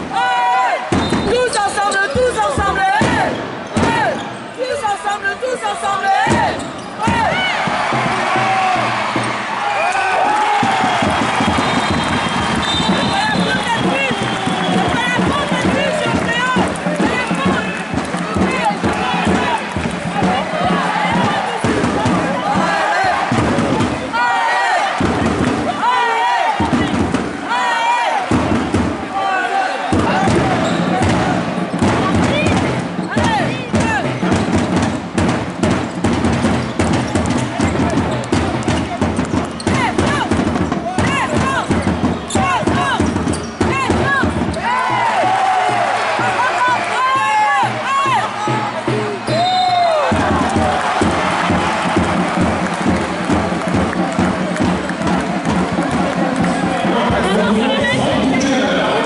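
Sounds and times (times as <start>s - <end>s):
crowd voices: 0.0s - 59.0s
sneakers squeaking: 6.2s - 7.2s, 30.4s - 31.3s, 35.9s - 38.9s, 41.4s - 44.6s
basketball bouncing: 29.9s - 44.6s
arena music: 37.8s - 59.0s.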